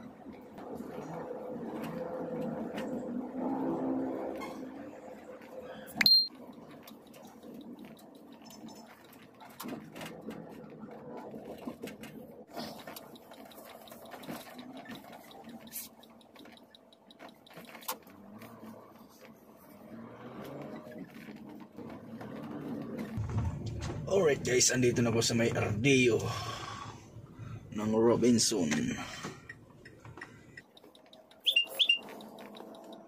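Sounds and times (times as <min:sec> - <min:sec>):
car engine and road noise: 0:00.0 - 0:33.0
small clicks and rattles: 0:06.3 - 0:19.7, 0:29.2 - 0:33.0.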